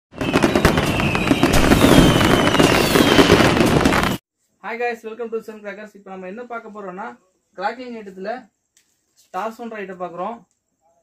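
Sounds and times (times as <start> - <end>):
falling firework whistles: 0.1 - 4.2
fireworks crackling: 0.1 - 4.2.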